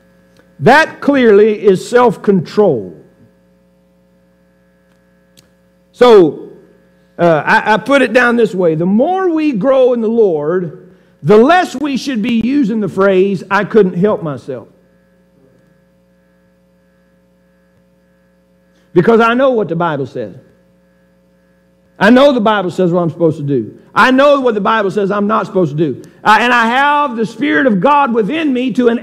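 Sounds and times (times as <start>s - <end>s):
faint electrical mains hum: 0.0s - 29.0s
man speaking: 0.6s - 3.0s, 6.0s - 6.5s, 7.2s - 14.7s, 18.9s - 20.4s, 22.0s - 29.0s.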